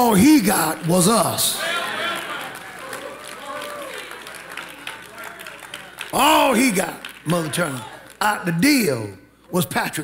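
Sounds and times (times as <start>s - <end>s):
congregation clapping: 0.1s - 8.8s.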